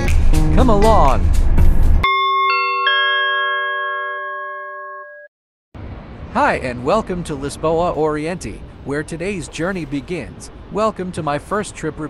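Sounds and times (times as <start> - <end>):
bell-like chime chord: 2.0 - 5.3.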